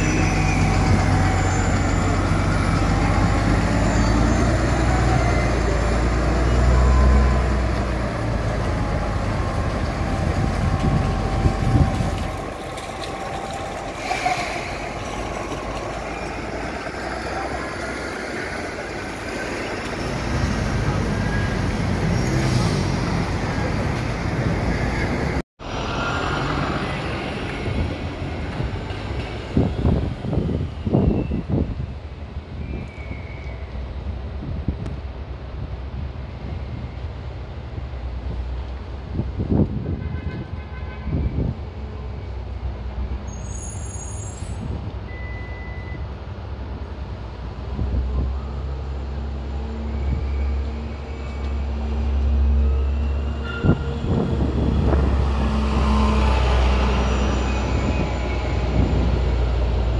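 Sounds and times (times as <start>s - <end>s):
bus engine pulling away: 0.0s - 39.8s, 41.4s - 59.9s
bus approaching: 0.0s - 40.0s, 41.2s - 59.9s
street traffic noise: 0.0s - 59.9s.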